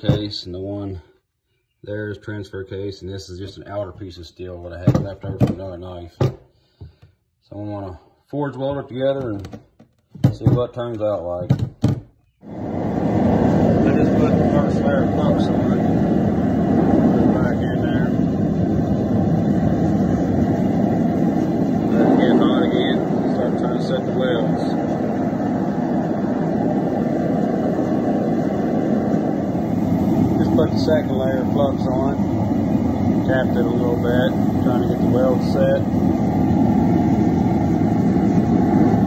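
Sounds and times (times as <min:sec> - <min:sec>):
gas forge burner rushing: 0:00.0 - 0:01.0, 0:07.9 - 0:39.0.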